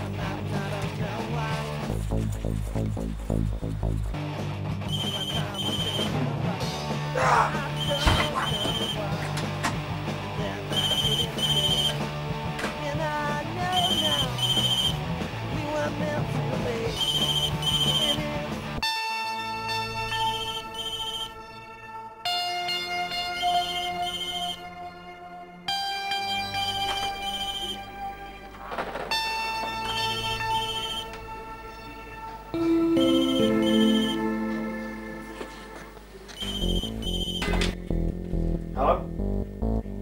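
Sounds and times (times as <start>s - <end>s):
background music: 0.0s - 40.0s.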